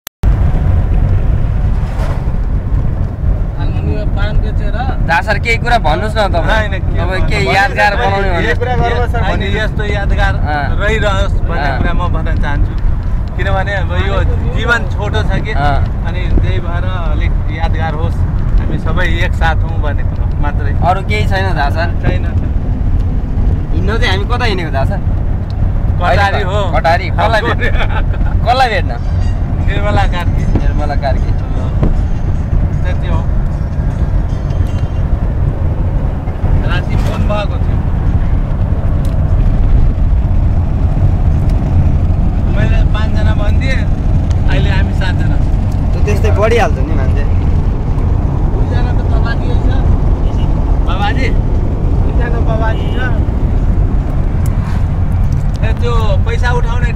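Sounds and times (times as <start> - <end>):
road and wind noise: 0.2 - 56.9
vehicle rumble from on board: 0.2 - 56.9.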